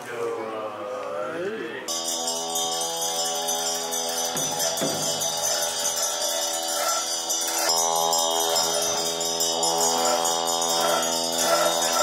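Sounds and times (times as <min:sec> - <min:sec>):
bells and cymbals ringing: 0:01.9 - 0:12.0
sustained droning tones: 0:01.9 - 0:12.0.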